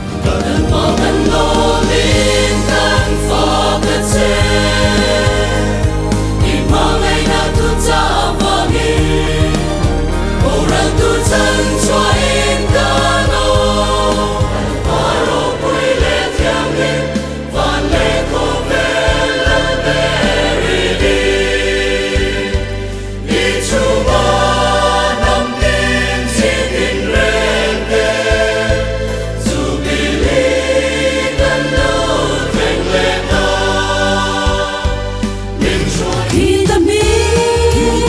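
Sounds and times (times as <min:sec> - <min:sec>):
mixed choir singing: 0:00.0 - 0:38.0
musical accompaniment: 0:00.0 - 0:38.0.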